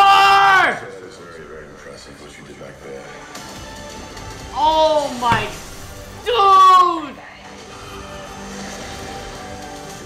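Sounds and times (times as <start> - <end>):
man shouting: 0.0 - 0.8, 6.2 - 7.2
movie trailer music: 0.8 - 10.0.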